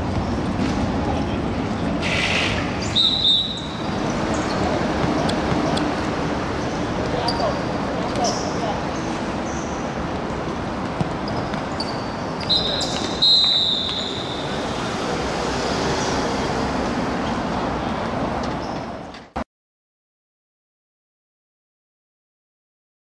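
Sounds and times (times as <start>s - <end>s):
players' voices: 2.9s - 9.6s
ball kick: 4.9s - 5.8s
long high whistle blast: 12.5s - 14.6s.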